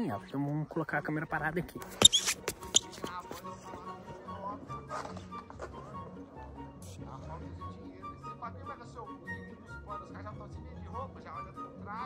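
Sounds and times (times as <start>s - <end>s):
soft music with low note: 0.0s - 12.0s.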